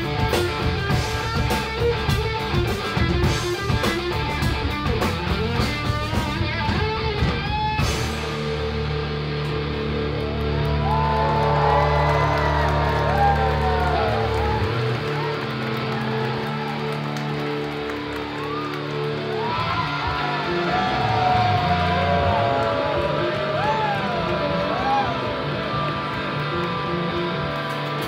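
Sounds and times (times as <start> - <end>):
bass guitar sustained notes: 0.0 - 28.0
electric guitar bending notes: 0.0 - 28.0.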